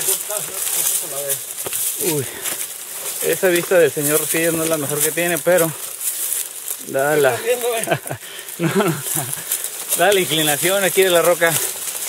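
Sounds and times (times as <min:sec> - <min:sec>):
leafy branches rustling and scraping: 0:00.0 - 0:12.0.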